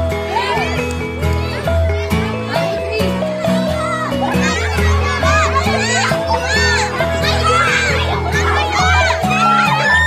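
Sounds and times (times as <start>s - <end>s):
background music with bass notes: 0.0s - 10.0s
children shouting and chattering: 0.0s - 10.0s.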